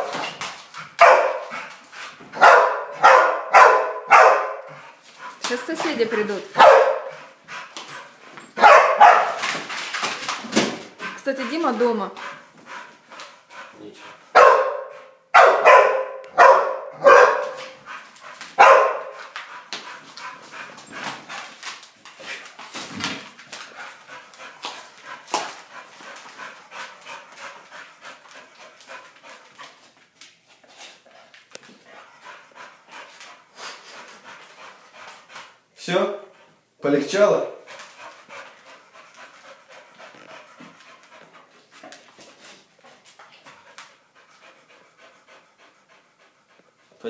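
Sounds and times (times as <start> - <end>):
dog barking loudly: 1.0 - 1.6, 2.4 - 4.8, 6.5 - 7.2, 8.6 - 9.4, 14.3 - 17.8, 18.6 - 19.2.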